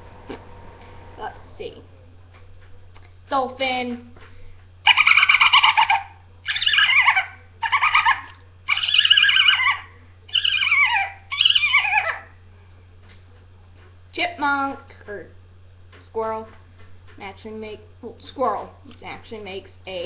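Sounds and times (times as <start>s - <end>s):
girl imitating dolphin squeaks: 4.9s - 12.3s.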